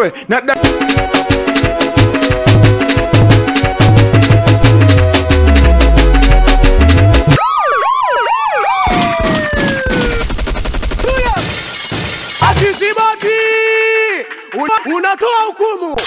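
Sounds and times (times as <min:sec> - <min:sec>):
fast dance beat: 0:00.6 - 0:07.4
rapid percussion hits: 0:00.6 - 0:07.4, 0:09.2 - 0:13.5.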